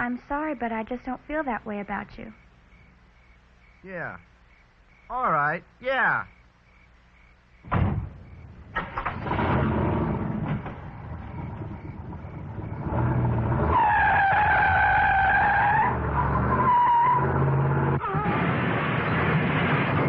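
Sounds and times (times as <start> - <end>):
car engine revving: 8.7 - 20.0
tyres squealing: 13.0 - 18.4.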